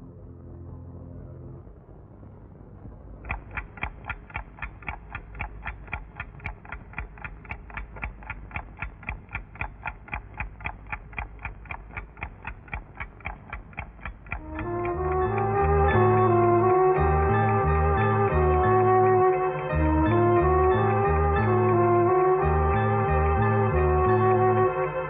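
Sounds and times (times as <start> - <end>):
low rumbling drone: 0.0 - 25.0
rapid ticking: 3.2 - 16.2.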